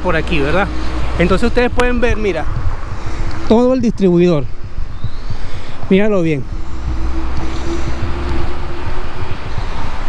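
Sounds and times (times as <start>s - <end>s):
passing vehicle hum: 0.0s - 10.0s
traffic rumble: 0.0s - 10.0s.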